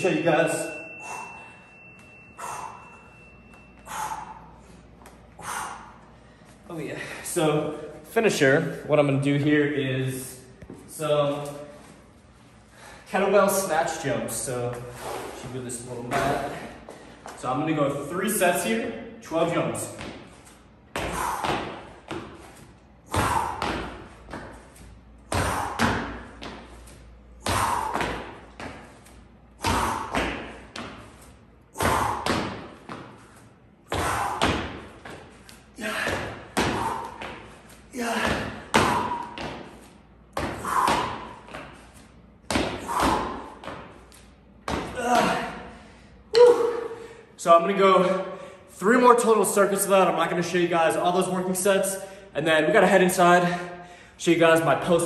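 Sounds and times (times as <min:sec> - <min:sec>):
hard exhales: 0:00.8 - 0:03.2, 0:03.8 - 0:07.4, 0:14.8 - 0:15.5, 0:21.0 - 0:21.8, 0:25.3 - 0:26.3, 0:27.4 - 0:28.3, 0:31.7 - 0:32.5, 0:35.8 - 0:39.5, 0:40.5 - 0:41.5
kettlebell landing thumps: 0:23.0 - 0:26.7, 0:29.6 - 0:31.1, 0:31.7 - 0:33.2, 0:33.9 - 0:44.0.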